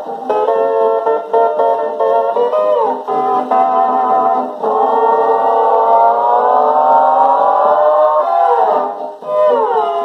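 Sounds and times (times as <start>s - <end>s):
orchestral music on gramophone: 0.0s - 10.0s.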